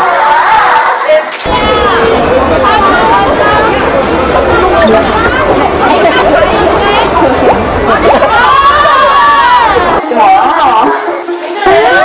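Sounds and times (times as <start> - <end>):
higher voices rising together: 0.0 - 10.2
crowd chattering: 0.0 - 12.0.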